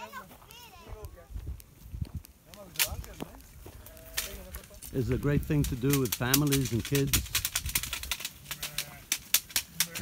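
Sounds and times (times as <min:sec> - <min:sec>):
stick knocking on branches: 0:04.1 - 0:10.0
sheep bleating: 0:08.5 - 0:09.2, 0:09.8 - 0:10.0.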